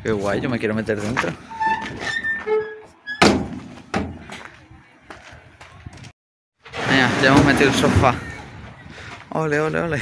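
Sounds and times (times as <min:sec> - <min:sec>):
thud on trailer: 0:03.2 - 0:04.2.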